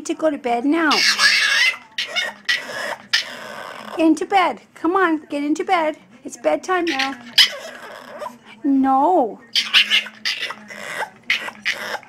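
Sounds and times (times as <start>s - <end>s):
puppy grumbling: 0.9s - 4.2s, 6.9s - 8.6s, 9.5s - 12.0s.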